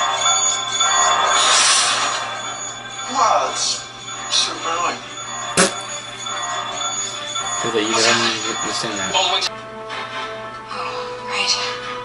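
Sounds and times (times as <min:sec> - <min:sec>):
music bed: 0:02.4 - 0:12.0.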